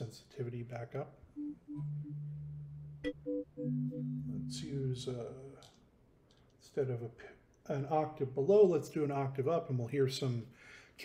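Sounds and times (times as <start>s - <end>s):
synthesized blips: 1.4s - 5.0s
low synthesized notes held: 1.4s - 5.6s.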